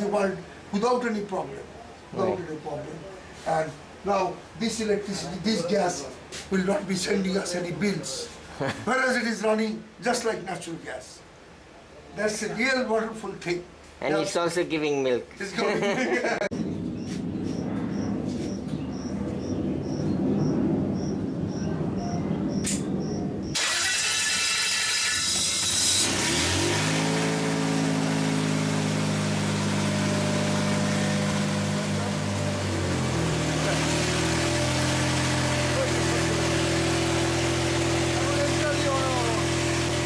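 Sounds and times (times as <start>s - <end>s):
car engine running: 23.0s - 40.0s.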